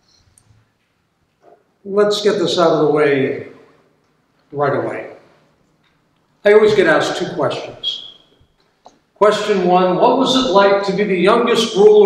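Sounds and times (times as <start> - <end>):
faint small noises: 0.0 - 2.3, 2.9 - 9.4
man speaking loudly: 1.8 - 3.6, 4.5 - 5.3, 6.4 - 8.2, 9.2 - 12.0.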